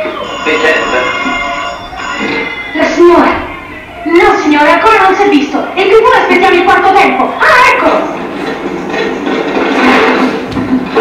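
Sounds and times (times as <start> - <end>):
busy noisy sound effects: 0.0 - 11.0.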